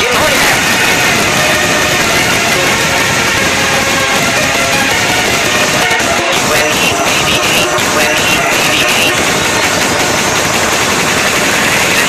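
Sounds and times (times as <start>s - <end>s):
loud dense background music: 0.0s - 12.0s.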